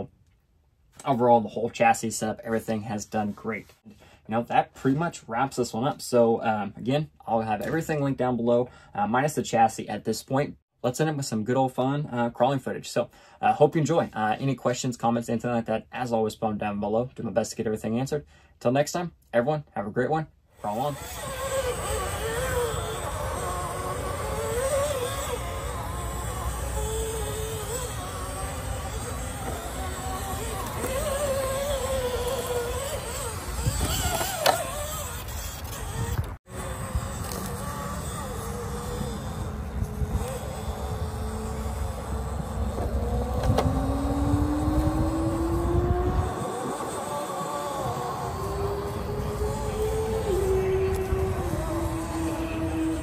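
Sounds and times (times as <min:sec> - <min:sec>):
toy car electric motor whine: 0:20.6 - 0:53.0.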